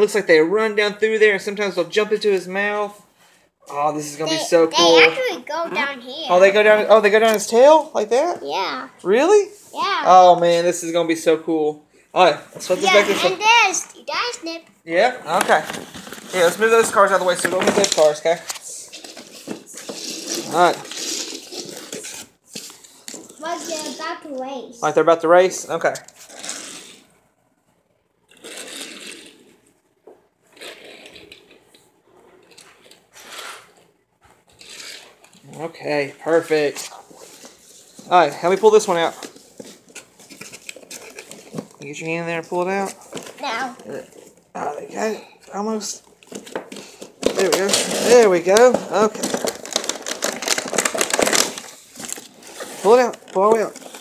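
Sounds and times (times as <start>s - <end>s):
toy cars scraping on wooden floor: 12.6s - 14.0s, 18.8s - 24.3s, 26.1s - 27.1s, 28.3s - 29.6s, 30.5s - 31.6s, 32.5s - 33.8s, 34.6s - 35.2s, 46.8s - 49.9s, 51.7s - 54.0s
cardboard packaging crackling: 15.4s - 23.9s, 45.7s - 54.0s.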